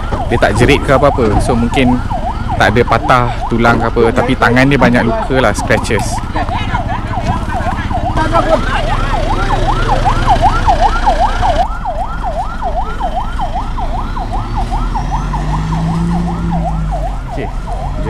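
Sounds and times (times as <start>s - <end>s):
ambulance siren yelping: 0.0s - 18.0s.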